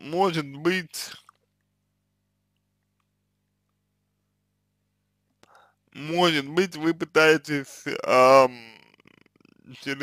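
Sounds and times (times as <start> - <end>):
faint low hum: 0.0 - 10.0
man's soft intake of breath: 5.4 - 5.8.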